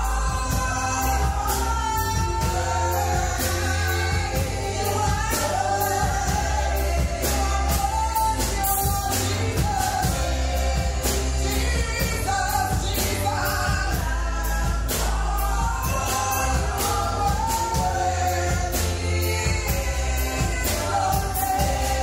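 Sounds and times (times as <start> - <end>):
bass guitar: 0.0 - 22.0
women singing gospel song: 0.0 - 22.0.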